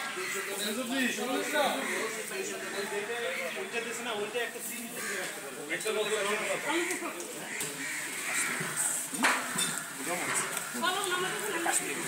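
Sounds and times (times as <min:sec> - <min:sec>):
utensils clinking against metal pots: 0:08.5 - 0:10.7.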